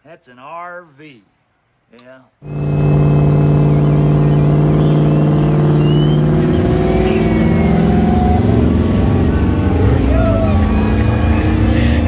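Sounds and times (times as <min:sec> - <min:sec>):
motorhome engine accelerating hard: 0:02.4 - 0:12.0.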